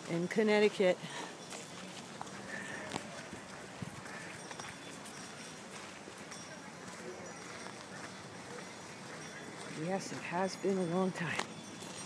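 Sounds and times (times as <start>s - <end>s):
footsteps outdoors: 0.0s - 12.0s.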